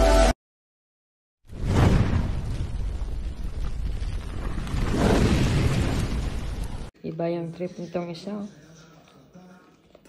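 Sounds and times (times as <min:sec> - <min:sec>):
explosion-like rushing boom: 0:01.5 - 0:06.9.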